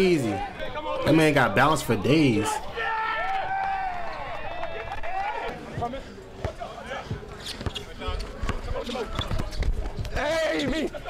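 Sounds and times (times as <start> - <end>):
voices of players and onlookers: 0.0 - 11.0.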